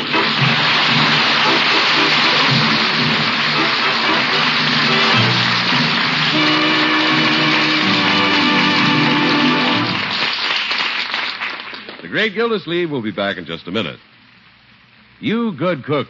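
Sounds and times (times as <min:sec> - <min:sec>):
studio audience applause: 0:00.0 - 0:12.3.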